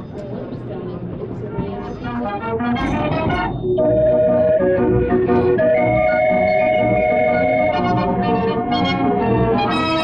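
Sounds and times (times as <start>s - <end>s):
street organ playing a tune: 1.7s - 10.0s.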